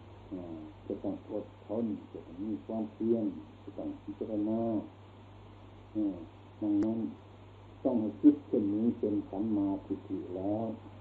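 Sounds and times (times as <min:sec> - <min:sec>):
steady low hum: 0:00.0 - 0:11.0
man speaking drawn-out syllable: 0:00.3 - 0:04.9, 0:06.0 - 0:07.2, 0:07.9 - 0:10.8.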